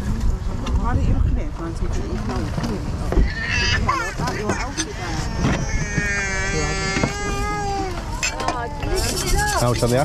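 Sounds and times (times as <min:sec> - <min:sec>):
people talking indistinctly: 0:00.0 - 0:10.0
wind buffeting microphone: 0:00.0 - 0:10.0.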